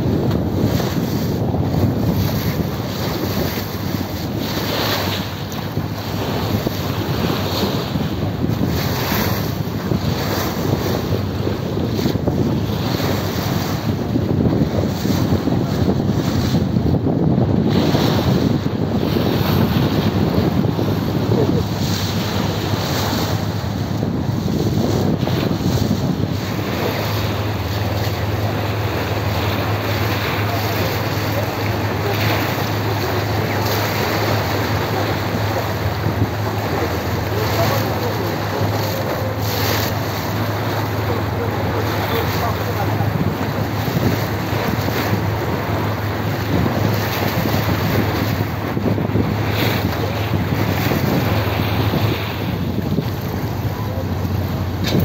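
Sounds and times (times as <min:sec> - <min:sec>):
water rushing along hull: 0:00.0 - 0:55.0
wind buffeting microphone: 0:00.0 - 0:55.0
ferry engine droning: 0:20.3 - 0:55.0.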